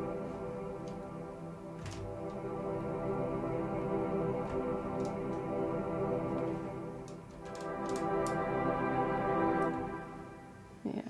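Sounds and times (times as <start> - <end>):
sustained guitar pad chord: 0.0 - 10.8.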